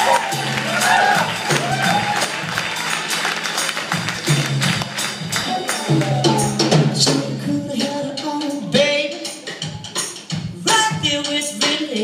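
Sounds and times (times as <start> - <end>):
keyboard: 0.0 - 12.0
steady drum beat: 0.0 - 12.0
electric guitar: 3.3 - 7.5.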